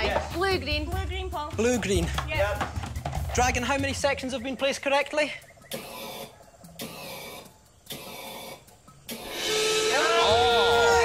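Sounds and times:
music: 0.0s - 11.0s
crowd cheering: 9.6s - 11.0s.

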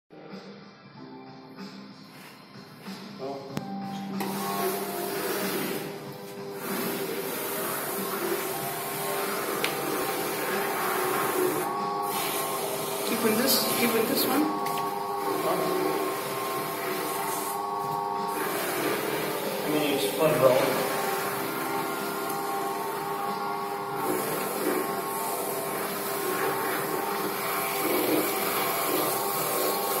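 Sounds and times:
shoe shine brushes whirring: 4.2s - 30.0s.

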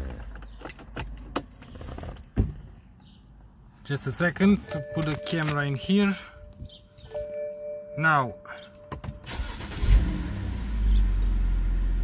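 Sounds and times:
handling clicks and knocks: 0.0s - 2.7s, 4.2s - 7.1s.

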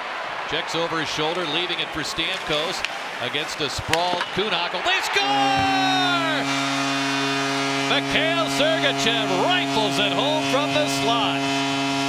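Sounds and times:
arena goal horn: 5.0s - 12.0s.

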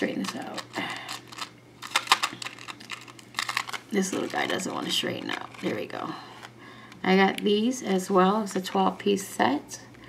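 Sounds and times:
metal charms clicking and rattling: 0.1s - 5.8s.

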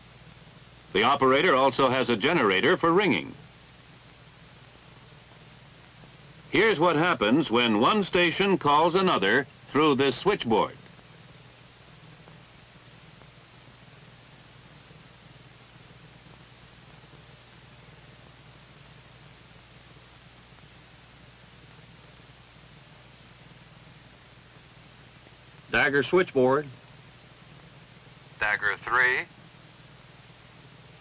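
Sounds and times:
faint steady hiss: 0.0s - 31.0s
low even hum: 0.0s - 31.0s.

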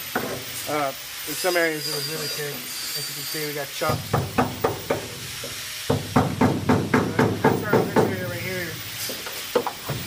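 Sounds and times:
steady hiss: 0.0s - 10.0s
chisel striking metal: 3.8s - 8.2s.

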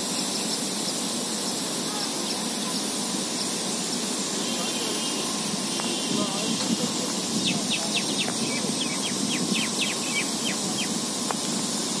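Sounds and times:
lawn sprinklers hissing: 0.0s - 12.0s
city traffic rumble: 1.4s - 12.0s.

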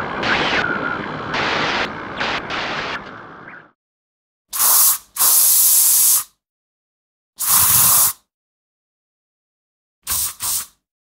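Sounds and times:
airbrush air hissing: 4.6s - 6.2s, 7.4s - 8.2s, 10.1s - 10.7s.

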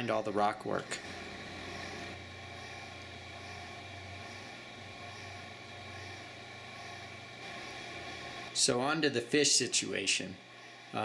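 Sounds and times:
aquarium pumps humming: 0.0s - 11.0s.

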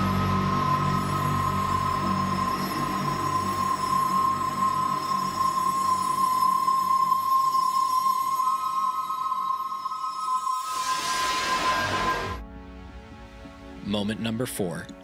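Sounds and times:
steady high tone: 0.0s - 12.5s
low hum: 0.0s - 13.2s.

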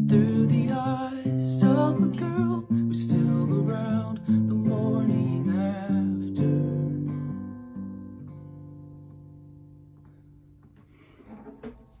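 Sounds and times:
acoustic guitar strumming: 0.0s - 12.0s
guitar handling knocks: 10.0s - 12.0s.

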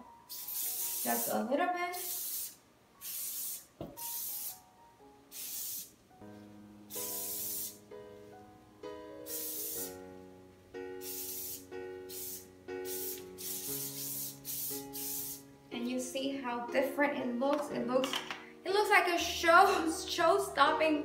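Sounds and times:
soft piano background music: 0.0s - 21.0s
aerosol spray hissing: 0.3s - 1.4s, 2.0s - 4.6s, 5.3s - 5.9s, 6.9s - 7.8s, 9.2s - 10.0s, 11.0s - 15.4s.

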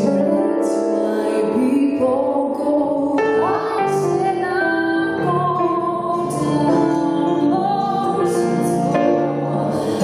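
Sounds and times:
acoustic guitar: 0.0s - 10.0s
woman singing: 0.0s - 10.0s.

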